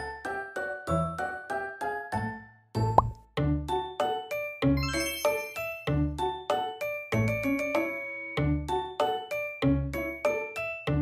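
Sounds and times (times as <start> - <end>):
light cute background music: 0.0 - 11.0.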